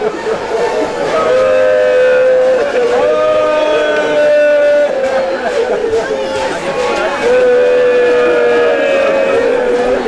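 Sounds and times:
crowd voices: 0.0 - 10.0
person chanting a lament: 6.7 - 10.0.

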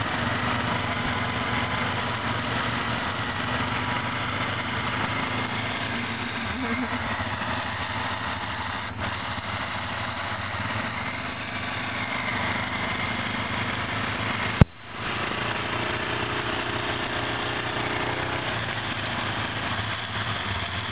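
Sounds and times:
quad engines idling: 0.0 - 20.9.

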